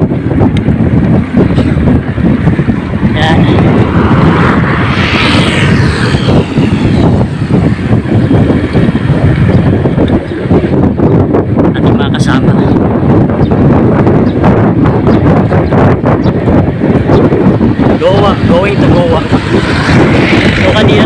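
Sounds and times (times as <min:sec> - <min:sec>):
rushing noise: 0:00.0 - 0:15.1, 0:15.9 - 0:21.0
wind buffeting microphone: 0:00.0 - 0:21.0.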